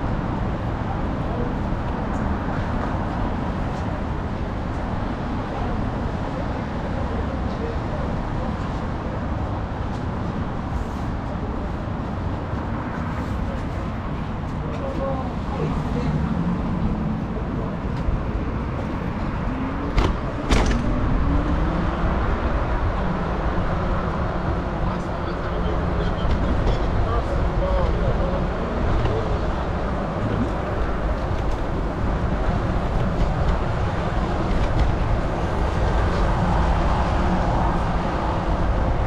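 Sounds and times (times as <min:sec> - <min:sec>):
traffic rumble: 0:00.0 - 0:39.0
faint voices: 0:00.5 - 0:39.0.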